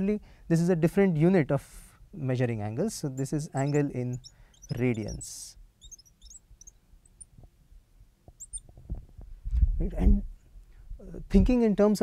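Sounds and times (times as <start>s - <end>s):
marker squeaking on board: 3.1s - 7.3s, 8.4s - 8.7s.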